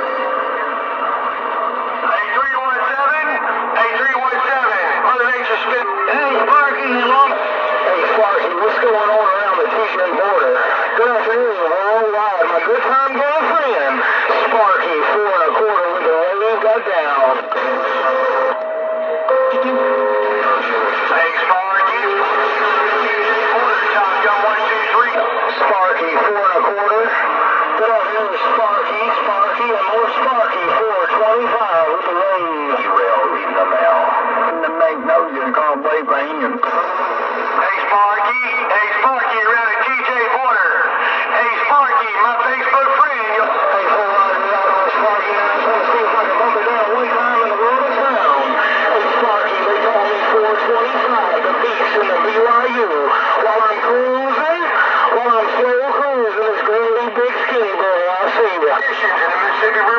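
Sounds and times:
distorted voices over radio: 0.0 - 59.9.

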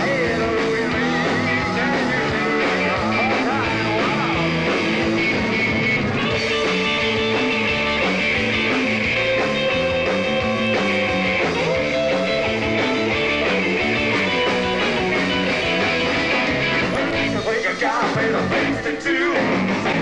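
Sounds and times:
electric guitar lead: 0.0 - 18.8
bass and drums: 0.0 - 20.0.

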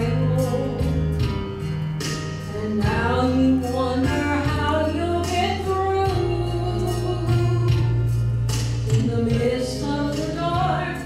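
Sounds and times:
instrumental accompaniment with bass: 0.0 - 11.0
women singing gospel: 2.5 - 7.9, 8.9 - 11.0.

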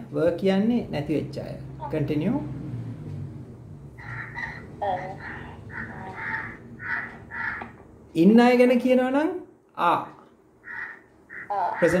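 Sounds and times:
crow cawing: 4.0 - 7.8, 10.6 - 12.0.

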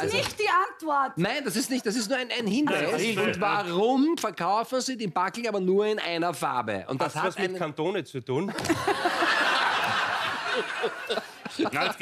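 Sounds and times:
studio audience laughing: 2.5 - 3.6, 8.5 - 12.0.

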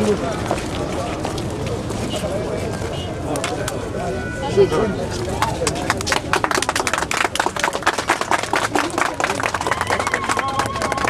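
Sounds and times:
crowd clapping: 5.2 - 11.0.

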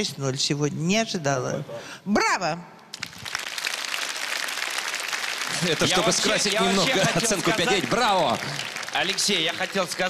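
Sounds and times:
audience applauding: 2.9 - 10.0.

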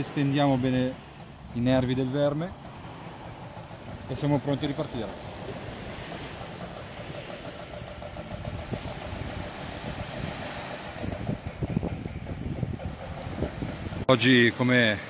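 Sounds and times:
wind buffeting microphone: 0.0 - 14.9
small waves washing onto sand: 0.0 - 15.0.

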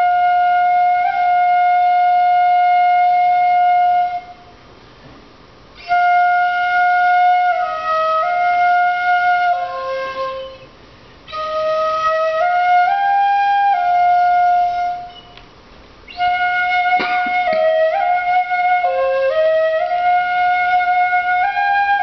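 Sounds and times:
bamboo flutes playing melody: 0.0 - 4.6, 5.8 - 22.0.

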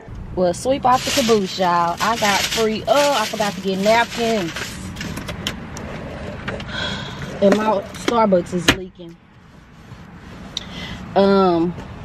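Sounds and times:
low rumble inside a car: 0.0 - 11.9.

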